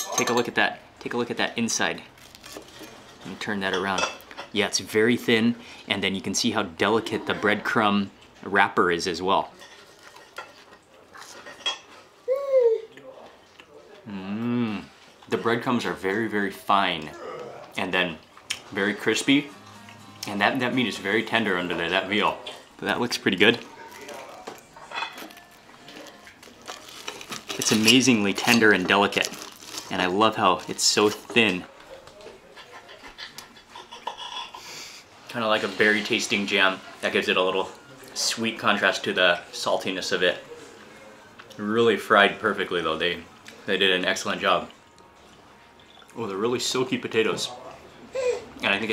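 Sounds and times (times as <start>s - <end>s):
cutlery clinking on a plate: 0.0s - 0.6s, 9.6s - 12.0s, 24.8s - 25.4s
person breathing: 34.6s - 35.1s.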